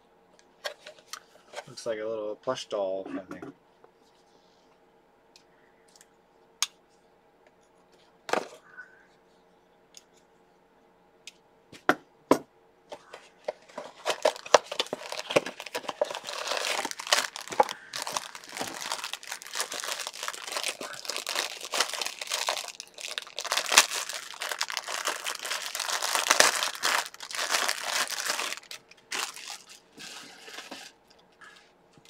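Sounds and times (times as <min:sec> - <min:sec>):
packaging crinkling: 0:13.0 - 0:31.0.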